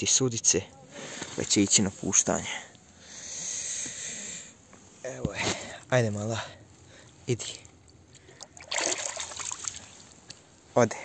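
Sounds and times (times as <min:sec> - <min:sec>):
shallow water splashing: 0:07.8 - 0:10.3.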